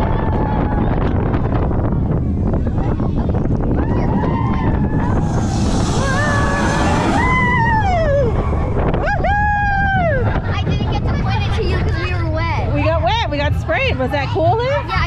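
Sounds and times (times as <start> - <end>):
roller coaster rumbling on track: 0.0 - 15.0
wind on microphone: 0.0 - 15.0
children screaming: 3.7 - 10.4.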